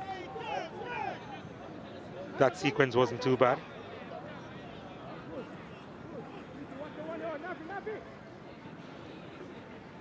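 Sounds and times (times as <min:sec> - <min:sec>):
football ground background noise: 0:00.0 - 0:10.0.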